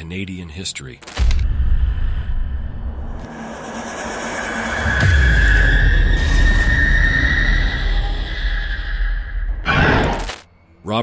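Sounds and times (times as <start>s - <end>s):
noisy sound design riser: 1.7s - 9.6s.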